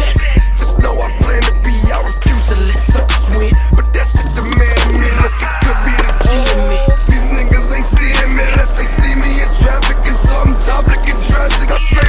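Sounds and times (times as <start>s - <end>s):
music with heavy bass beat: 0.0s - 12.0s
skateboard wheels rolling on pavement: 0.0s - 12.0s.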